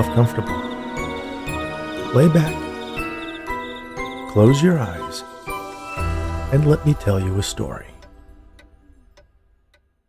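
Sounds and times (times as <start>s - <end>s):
held music notes: 0.0s - 9.8s
clock ticking: 0.0s - 10.0s.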